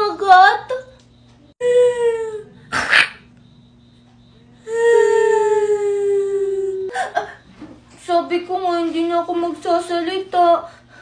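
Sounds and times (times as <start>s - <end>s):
woman moaning: 1.6s - 2.6s, 4.6s - 7.2s.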